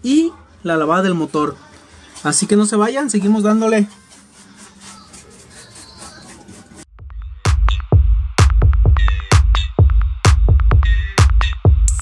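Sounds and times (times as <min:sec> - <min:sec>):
soft rustling and handling: 0:01.7 - 0:06.9.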